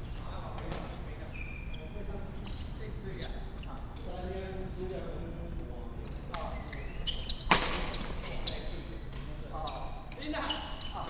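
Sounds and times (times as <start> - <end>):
shoes squeaking on hall floor: 0.0 - 5.3, 6.0 - 11.0.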